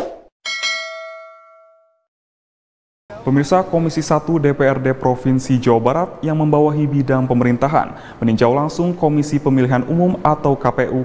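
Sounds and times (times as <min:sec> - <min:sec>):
bright bell ding: 0:00.5 - 0:02.1.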